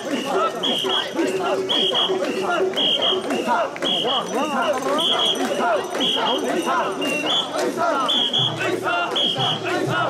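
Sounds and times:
crowd chanting in rhythm: 0:00.0 - 0:10.0.

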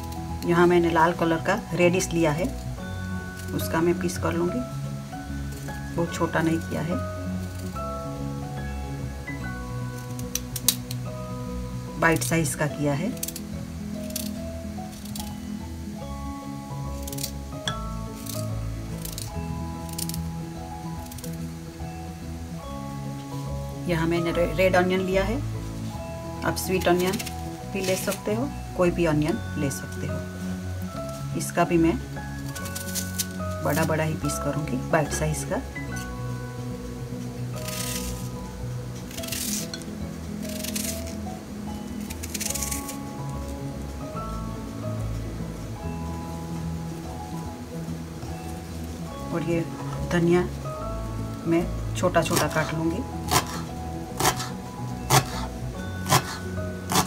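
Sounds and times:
background music: 0:00.0 - 0:57.0
knife slicing radish: 0:39.0 - 0:41.2, 0:42.0 - 0:43.0, 0:52.3 - 0:57.0.

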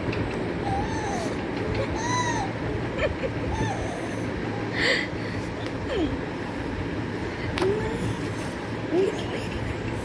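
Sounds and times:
baby squealing: 0:00.6 - 0:02.6.

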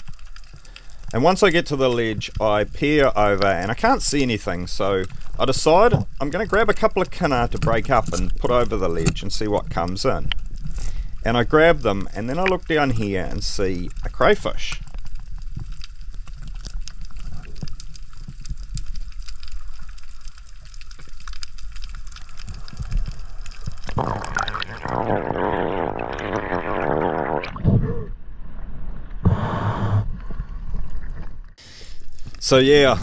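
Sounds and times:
underwater clicks crackling: 0:00.0 - 0:27.6
underwater rumble of moving water: 0:00.0 - 0:33.0
water splashing and gurgling: 0:15.1 - 0:29.2.

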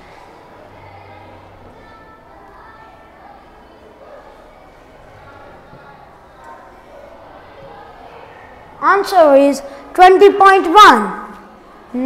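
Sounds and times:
faint background voices: 0:00.0 - 0:08.8
room noise: 0:00.0 - 0:12.0.

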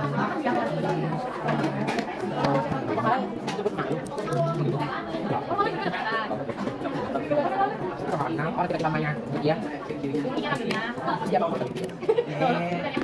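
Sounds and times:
young voices chattering: 0:00.0 - 0:13.0.

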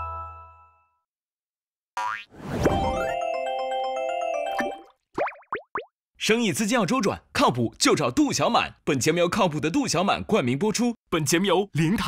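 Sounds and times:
cartoonish music jingle: 0:02.8 - 0:04.9.

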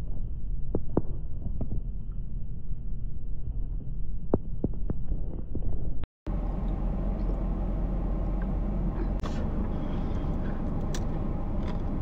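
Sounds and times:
car cabin hum and rumble: 0:03.9 - 0:12.0.

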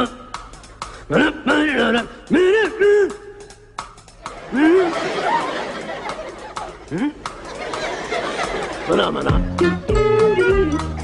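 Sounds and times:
person scat-singing gibberish: 0:06.8 - 0:07.4.

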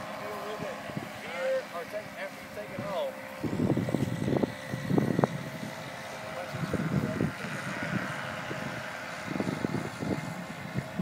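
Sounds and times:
steady outdoor hiss: 0:00.0 - 0:11.0
wind buffeting microphone: 0:00.0 - 0:11.0.

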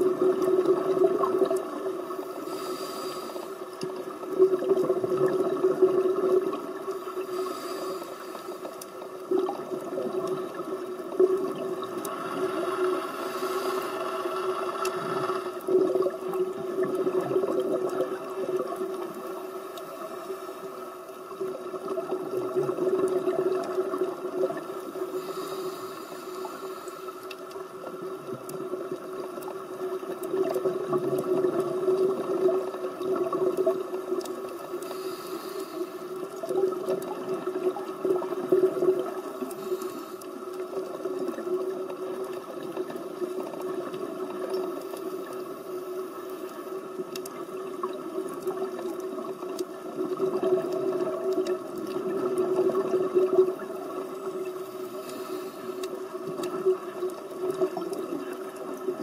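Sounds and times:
muffled underwater water rush: 0:00.0 - 0:59.0.

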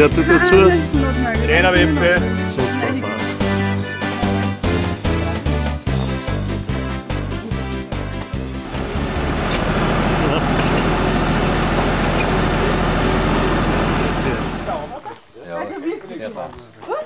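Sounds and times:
voices: 0:00.0 - 0:04.6, 0:08.8 - 0:17.0
tractor engine running: 0:08.2 - 0:15.0.

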